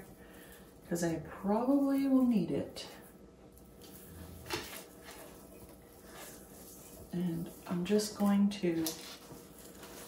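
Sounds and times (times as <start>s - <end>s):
faint rustling and handling: 0.0s - 10.0s.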